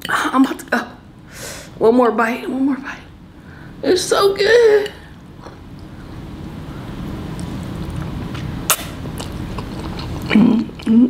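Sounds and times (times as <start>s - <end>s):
noodles being chewed: 7.3s - 11.0s
sharp click: 8.7s - 9.0s.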